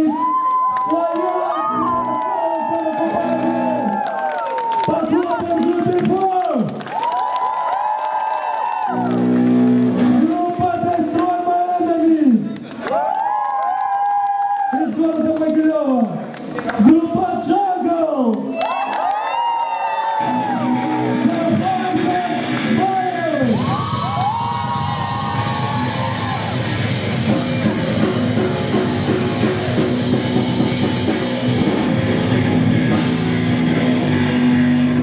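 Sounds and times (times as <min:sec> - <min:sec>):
metalcore band playing live: 0:20.6 - 0:35.0.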